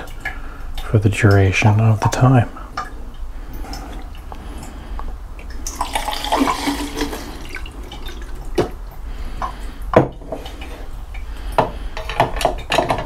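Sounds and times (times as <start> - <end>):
liquid gurgling pour into tank: 5.4 - 8.9.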